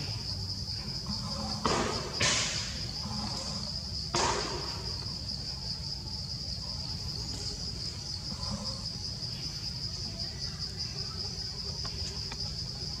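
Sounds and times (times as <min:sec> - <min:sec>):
insects trilling: 0:00.0 - 0:13.0.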